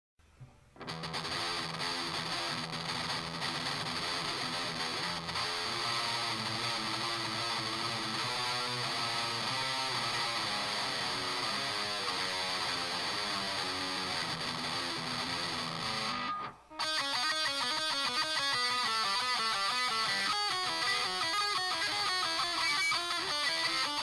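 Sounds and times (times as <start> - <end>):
grunge electric guitar: 0.8 - 24.0.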